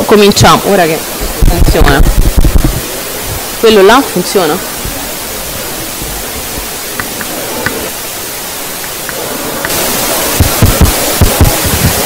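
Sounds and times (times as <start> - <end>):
sound system hiss: 0.0 - 12.0
low thumps: 1.2 - 3.6, 4.7 - 7.8, 8.8 - 12.0.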